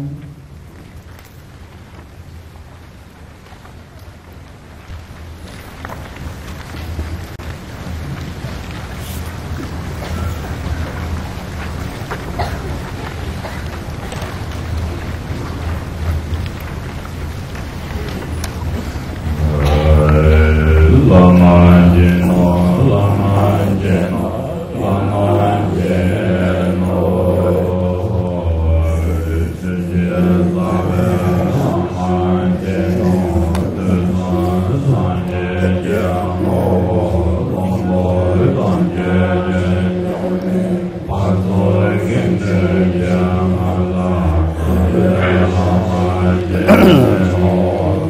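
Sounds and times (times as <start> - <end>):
man chanting: 19.2 - 48.0.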